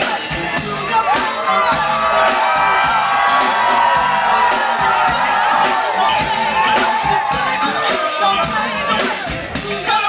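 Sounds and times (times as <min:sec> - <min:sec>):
crowd voices and whoops: 0:00.0 - 0:10.0
live band playing loudly: 0:00.0 - 0:10.0.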